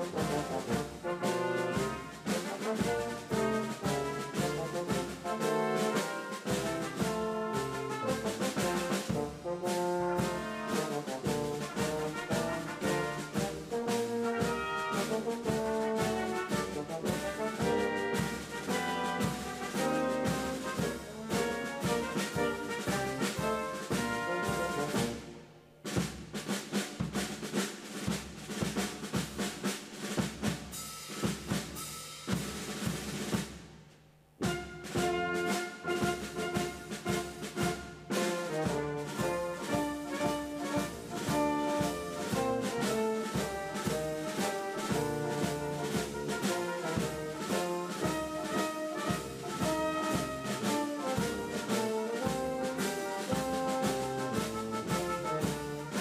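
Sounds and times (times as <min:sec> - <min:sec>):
brass band music with drums: 0:00.0 - 0:56.0.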